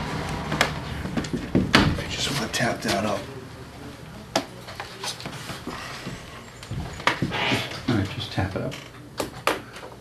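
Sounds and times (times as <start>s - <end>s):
low room murmur: 0.0s - 10.0s.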